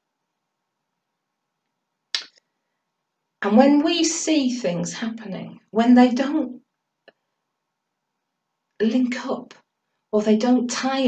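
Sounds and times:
faint steady hum: 0.0 - 11.0
mouth click: 2.1 - 2.4.

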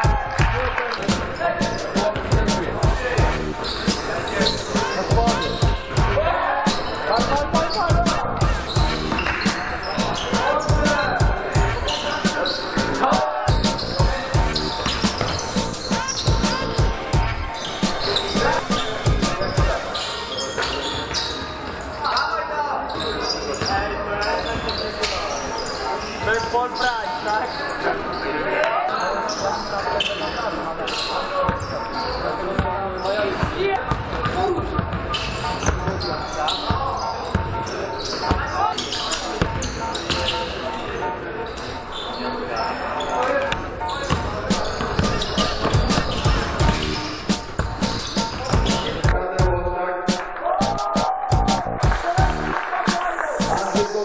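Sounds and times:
players calling out: 0.0 - 22.0, 43.5 - 54.0
basketball bouncing on court floor: 33.4 - 36.0, 43.5 - 49.2.

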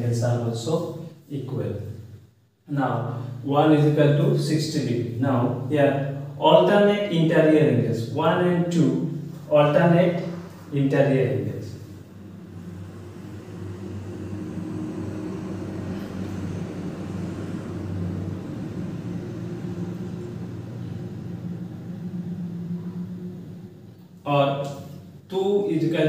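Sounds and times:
low mechanical rumble: 0.0 - 26.0.

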